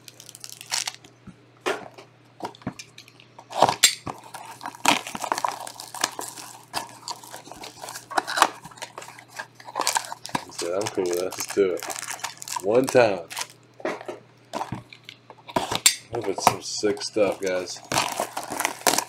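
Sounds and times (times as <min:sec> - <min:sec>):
shrink-wrap crinkling: 0:00.0 - 0:01.1, 0:03.4 - 0:13.6, 0:14.4 - 0:19.0.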